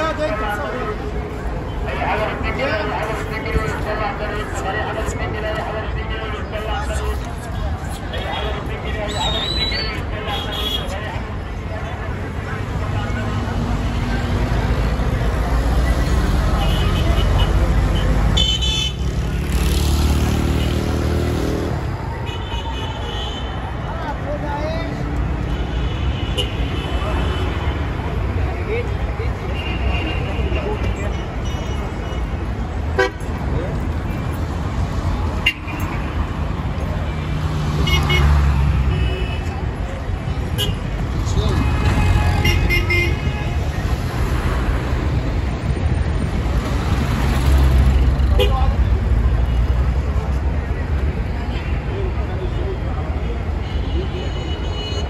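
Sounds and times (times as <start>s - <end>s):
vehicle engines running: 10.9s - 22.2s, 30.4s - 53.6s
vehicle passing close by: 19.0s - 21.9s
car horns tooting: 40.5s - 43.6s.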